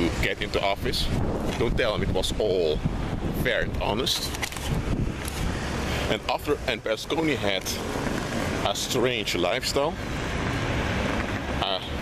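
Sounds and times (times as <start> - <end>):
man's voice: 0.0 - 4.4, 6.0 - 7.8, 8.6 - 10.0, 11.6 - 12.0.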